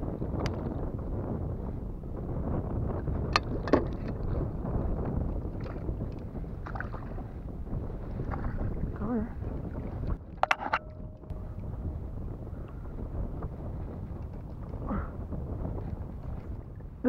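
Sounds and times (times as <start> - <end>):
wind buffeting microphone: 0.0 - 17.0
water lapping against kayak hull: 0.5 - 17.0
sharp clicks or knocks: 10.4 - 11.4.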